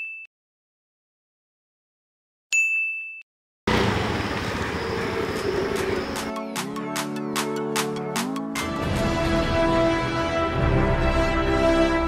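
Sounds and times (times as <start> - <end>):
street traffic noise: 3.7 - 6.3
background music with steady beat: 6.1 - 12.0.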